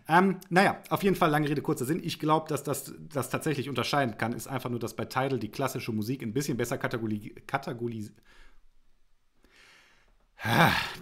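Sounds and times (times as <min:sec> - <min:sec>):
man breathing softly: 0:08.2 - 0:08.7, 0:09.4 - 0:11.0.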